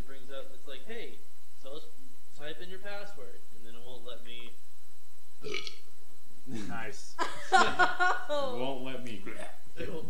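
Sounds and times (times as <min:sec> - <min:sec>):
person burping: 0:05.4 - 0:05.8.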